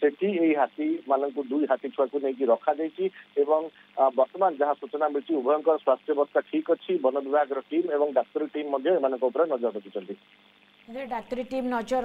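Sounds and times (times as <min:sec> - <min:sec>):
man speaking over telephone: 0:00.0 - 0:10.2.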